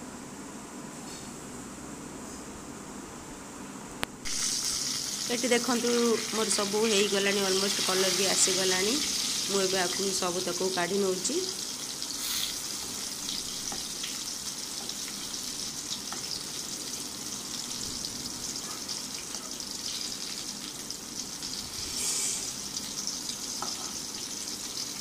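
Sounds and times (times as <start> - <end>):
eggplant sizzling in oil: 4.2 - 25.0.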